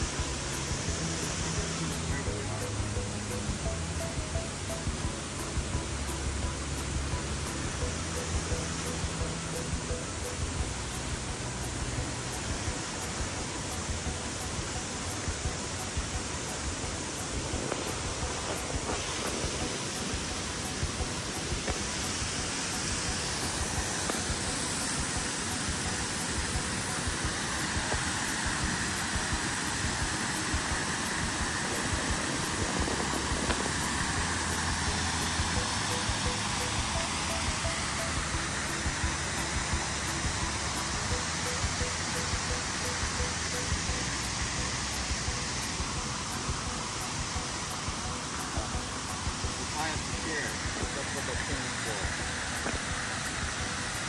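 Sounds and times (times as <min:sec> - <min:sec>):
small waterfall: 0:00.0 - 0:54.0
water rushing over rocks: 0:00.0 - 0:54.0.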